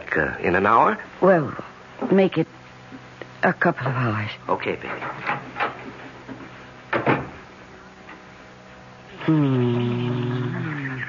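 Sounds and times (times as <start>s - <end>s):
faint low hum: 0.0s - 11.0s
door shutting with a thud: 6.9s - 7.4s.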